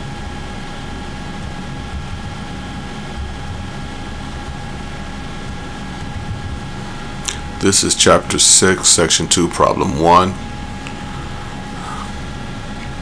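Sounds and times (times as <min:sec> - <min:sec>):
faint high whine: 0:00.0 - 0:13.0.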